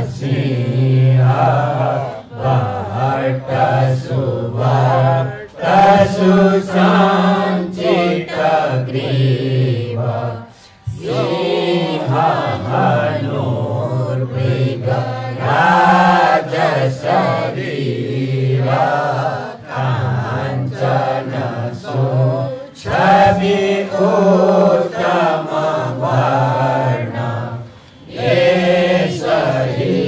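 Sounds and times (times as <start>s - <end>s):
group chanting through microphones: 0.0s - 30.0s.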